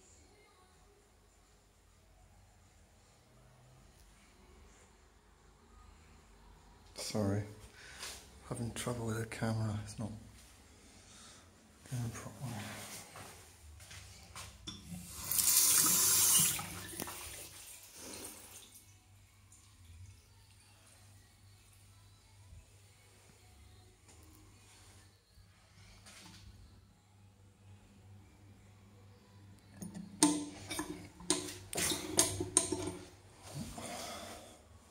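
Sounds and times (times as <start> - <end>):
tap water running into basin: 14.7 - 18.9, 30.2 - 33.0.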